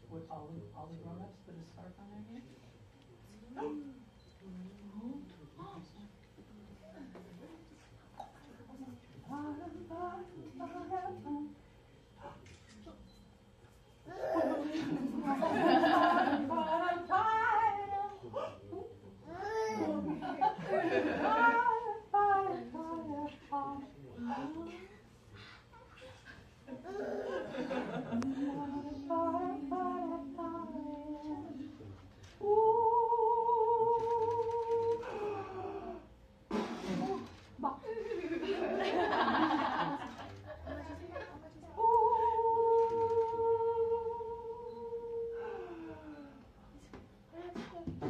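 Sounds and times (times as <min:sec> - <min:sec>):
woman singing wordlessly: 0:09.3 - 0:11.6, 0:16.4 - 0:18.2, 0:21.2 - 0:24.9, 0:28.2 - 0:31.6, 0:32.4 - 0:35.1, 0:41.7 - 0:45.4
woman humming: 0:32.4 - 0:36.1, 0:41.8 - 0:46.5.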